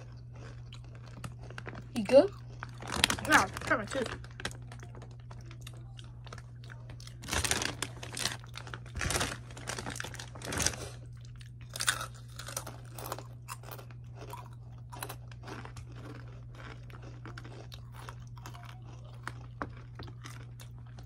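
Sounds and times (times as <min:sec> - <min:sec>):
crunching and chewing chips: 0:00.0 - 0:21.0
steady low hum: 0:00.0 - 0:21.0.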